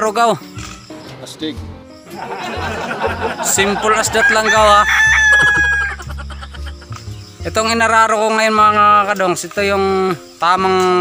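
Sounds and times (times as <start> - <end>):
rooster crowing: 2.7 - 6.1.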